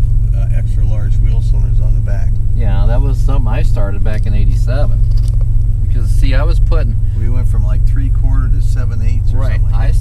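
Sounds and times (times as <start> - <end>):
car engine drone from inside cabin: 0.0 - 10.0.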